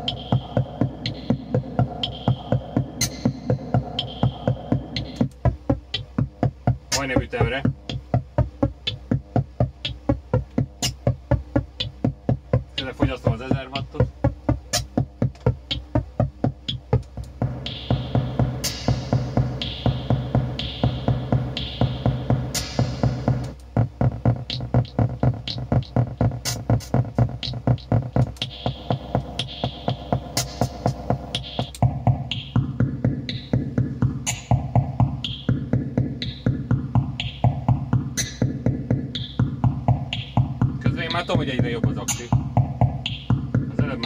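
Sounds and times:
electronic drum-machine pattern: 0:00.0 - 0:44.0.

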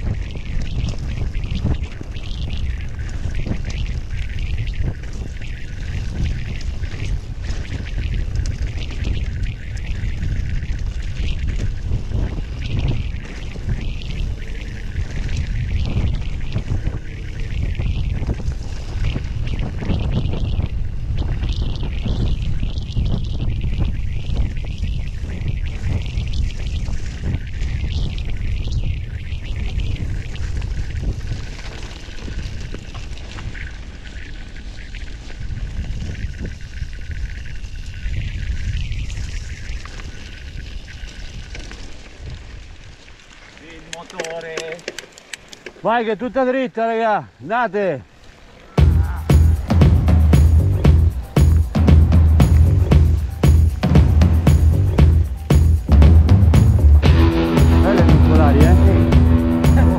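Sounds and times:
wind buffeting microphone: 0:00.0 - 0:46.0
bike tyres on gravel: 0:00.0 - 0:59.9.

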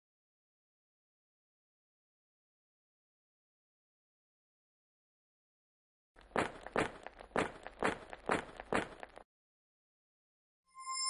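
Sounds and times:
footsteps: 0:06.2 - 0:09.2.

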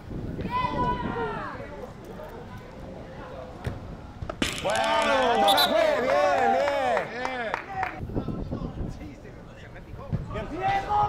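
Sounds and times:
players shouting: 0:04.6 - 0:07.7, 0:10.4 - 0:11.0.

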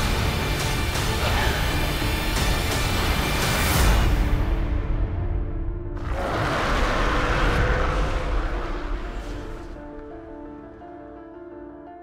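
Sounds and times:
loud rushing roar: 0:06.0 - 0:09.9.

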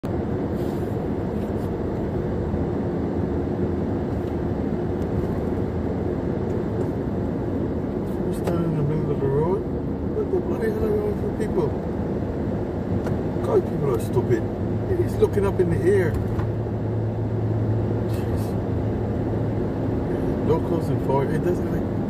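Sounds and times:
car road and engine noise: 0:00.0 - 0:22.0.

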